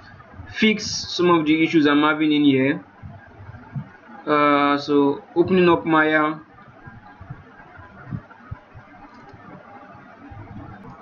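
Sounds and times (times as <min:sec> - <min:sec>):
soft low thuds: 0:02.8 - 0:04.2, 0:05.2 - 0:11.0.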